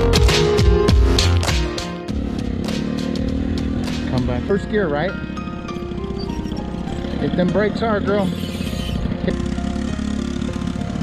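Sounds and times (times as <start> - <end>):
engine running steadily: 0.9 - 11.0.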